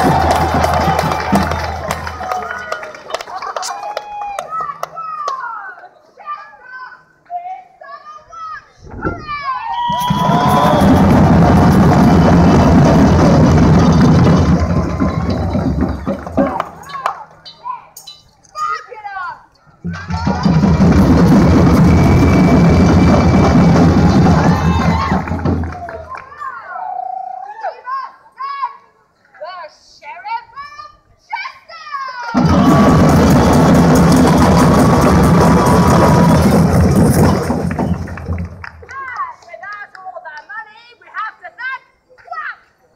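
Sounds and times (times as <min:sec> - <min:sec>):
drum band playing loudly: 0:10.0 - 0:16.9, 0:20.0 - 0:25.9, 0:32.4 - 0:38.0.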